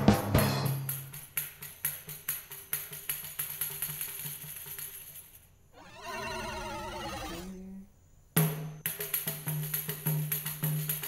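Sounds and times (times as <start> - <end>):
warbling tone with vibrato: 5.8 - 7.8.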